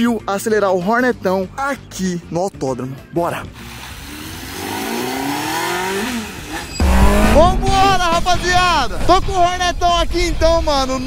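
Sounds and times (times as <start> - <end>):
motorcycle engine accelerating: 4.3 - 8.4
wind rumble: 6.8 - 11.0.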